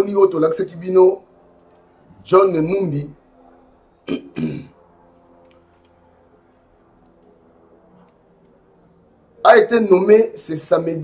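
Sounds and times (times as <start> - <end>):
man clearing his throat: 4.1 - 4.8
faint clicks: 7.0 - 7.3.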